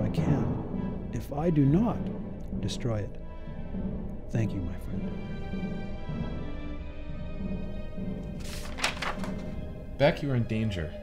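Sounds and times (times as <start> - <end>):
low film score music: 0.0 - 11.0
papers rustling and knocking: 8.2 - 9.7.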